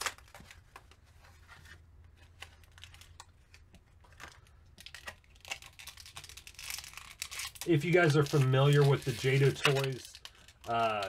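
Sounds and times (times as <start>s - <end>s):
plastic packaging crinkling: 0.0s - 1.1s, 2.1s - 11.0s
plastic blister tray crackling: 2.0s - 11.0s.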